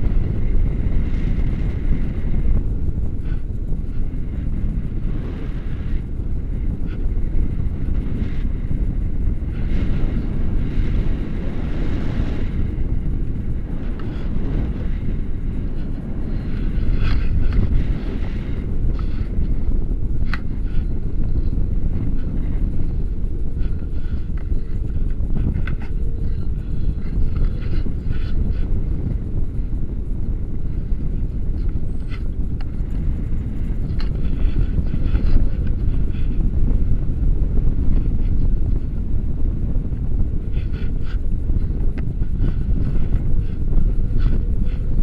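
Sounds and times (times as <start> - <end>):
wind noise on microphone: 0.0 - 45.0.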